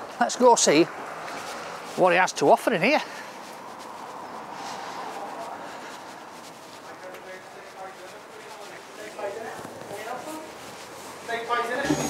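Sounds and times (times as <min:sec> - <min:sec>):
footsteps on pavement: 0:00.0 - 0:12.0
street background noise: 0:00.0 - 0:12.0.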